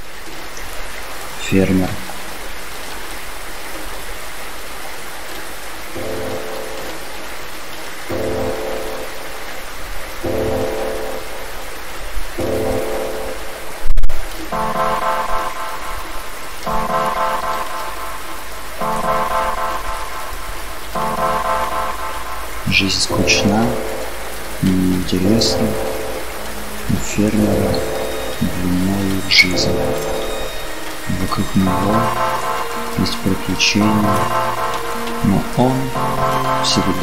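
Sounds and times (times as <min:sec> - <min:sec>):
steady rain: 0:00.0 - 0:37.0
synthesizer chords: 0:05.9 - 0:07.4, 0:08.1 - 0:09.6, 0:10.2 - 0:37.0.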